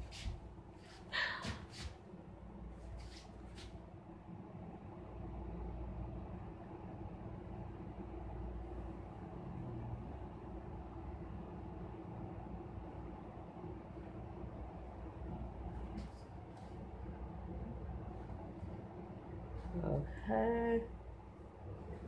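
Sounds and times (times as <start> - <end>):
low background rumble: 0.0 - 22.0.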